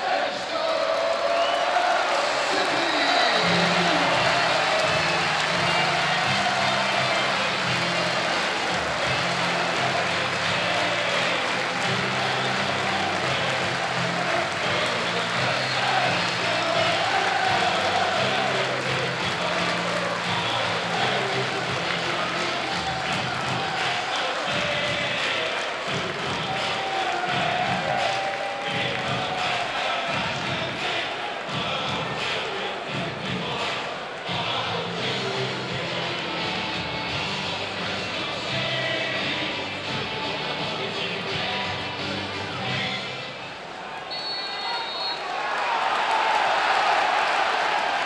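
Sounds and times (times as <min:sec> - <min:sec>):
crowd cheering and applauding: 0:00.0 - 0:48.0
music playing: 0:01.7 - 0:43.8.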